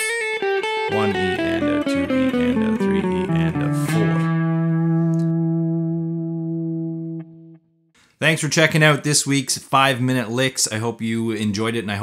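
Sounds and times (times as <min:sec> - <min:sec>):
electric guitar lick: 0:00.0 - 0:07.6.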